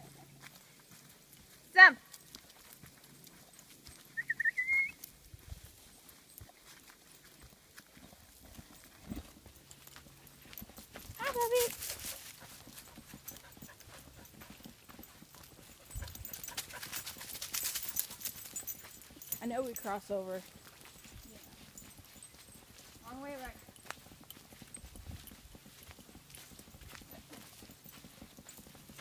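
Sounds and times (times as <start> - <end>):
short high calls: 4.2 - 5.0.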